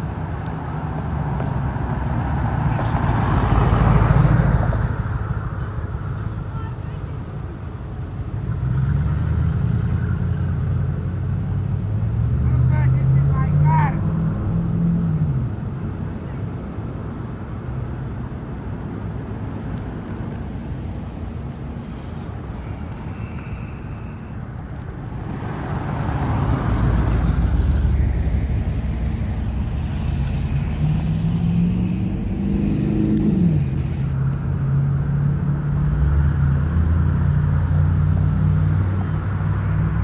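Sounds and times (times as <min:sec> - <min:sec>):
vehicle passing by: 0:00.0 - 0:06.3, 0:08.2 - 0:15.8, 0:20.5 - 0:40.0
vehicle engine pulling away: 0:23.1 - 0:40.0.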